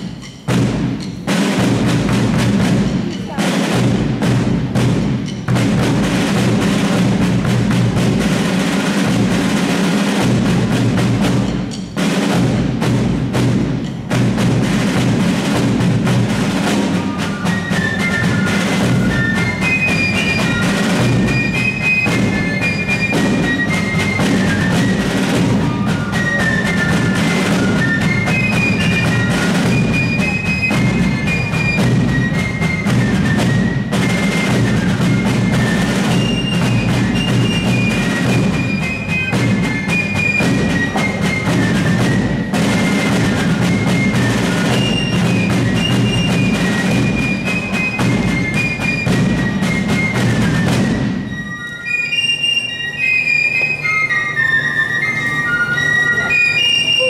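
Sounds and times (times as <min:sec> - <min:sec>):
snare and bass drums beating: 0:00.0 - 0:51.5.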